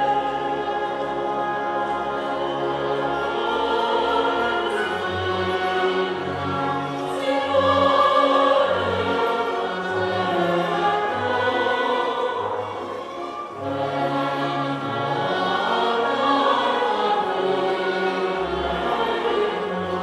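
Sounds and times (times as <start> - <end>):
mixed choir singing: 0.0 - 20.0
orchestra of strings and winds: 0.0 - 20.0.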